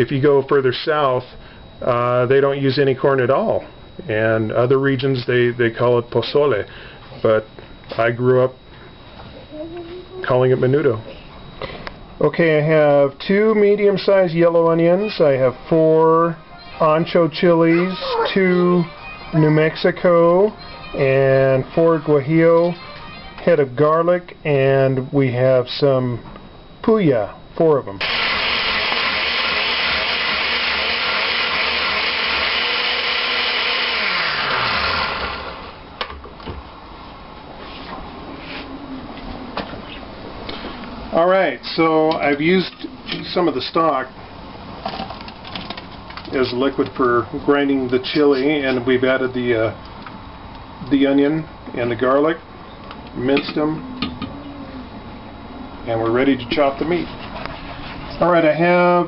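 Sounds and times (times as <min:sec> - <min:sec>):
blender running: 0:28.0 - 0:35.9.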